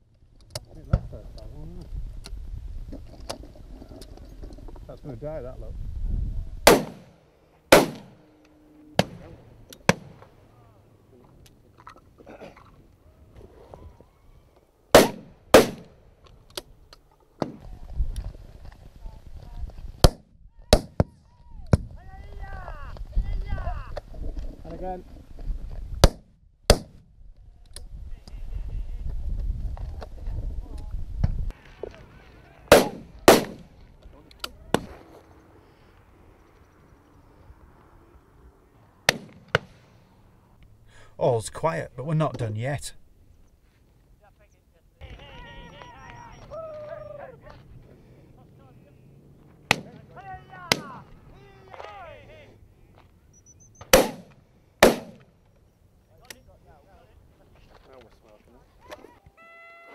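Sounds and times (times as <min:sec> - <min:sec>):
shotgun shots: 0:06.6 - 0:08.2, 0:09.0 - 0:10.2, 0:14.9 - 0:16.0, 0:26.0 - 0:27.0, 0:32.7 - 0:33.8, 0:39.0 - 0:39.8, 0:49.7 - 0:50.1, 0:53.8 - 0:55.3
faint distant shotgun shots: 0:06.7 - 0:08.2, 0:09.0 - 0:10.3, 0:14.9 - 0:16.0, 0:32.7 - 0:33.8, 0:39.0 - 0:39.8, 0:49.7 - 0:50.0, 0:53.8 - 0:55.3.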